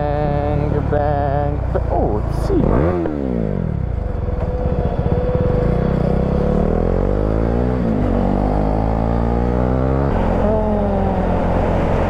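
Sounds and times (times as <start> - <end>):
motorcycle engine accelerating: 0.0 - 12.0.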